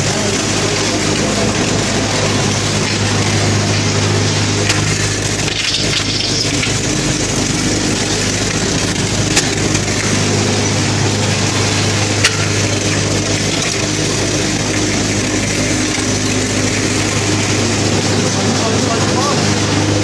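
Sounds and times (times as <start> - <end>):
vibrating machine low electric hum: 0.0 - 20.0.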